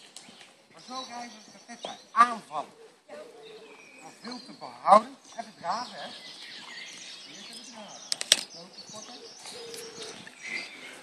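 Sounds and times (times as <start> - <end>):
small birds chirping: 0.0 - 11.0
sharp clicks: 8.1 - 8.6.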